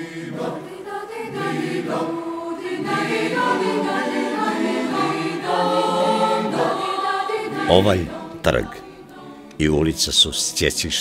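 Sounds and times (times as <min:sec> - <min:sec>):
choral singing: 0:00.0 - 0:11.0.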